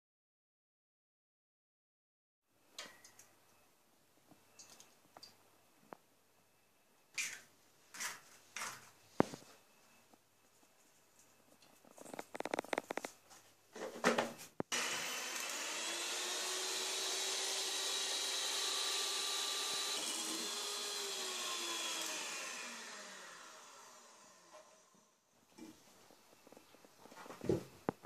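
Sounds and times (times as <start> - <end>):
electric hand mixer whisking: 14.7 - 25.0.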